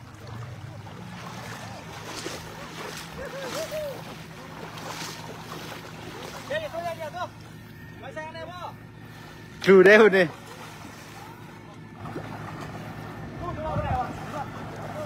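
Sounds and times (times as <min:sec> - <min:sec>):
distant voices calling: 0:00.0 - 0:15.0
low hum: 0:00.0 - 0:15.0
water sloshing and splashing: 0:00.0 - 0:15.0.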